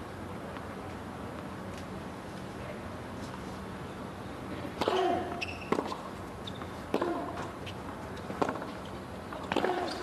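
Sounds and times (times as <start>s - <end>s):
racket striking tennis ball: 4.8s - 6.1s, 6.9s - 7.6s, 8.3s - 10.0s
sneaker squeaks: 4.8s - 7.8s
tennis ball bouncing: 4.8s - 10.0s.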